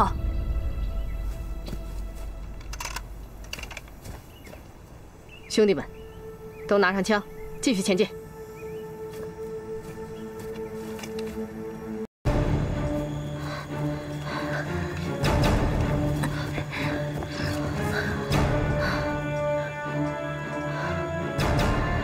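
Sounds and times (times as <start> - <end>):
tense orchestral score: 0.0 - 3.9, 5.5 - 22.0.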